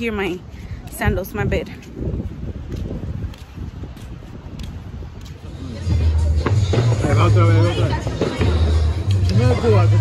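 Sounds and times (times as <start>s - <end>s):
sandals slapping on wooden boardwalk: 0.0s - 5.7s
wind rumble on microphone: 0.0s - 10.0s
voices: 5.3s - 10.0s
music with heavy bass beat: 5.5s - 10.0s.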